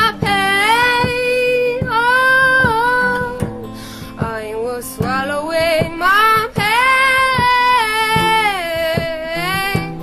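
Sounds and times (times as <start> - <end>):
strummed acoustic guitar: 0.0 - 10.0
woman singing: 0.0 - 10.0.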